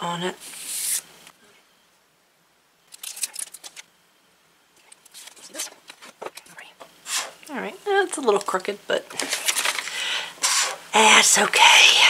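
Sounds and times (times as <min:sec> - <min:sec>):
plastic rustling and clicking: 0:09.1 - 0:09.9.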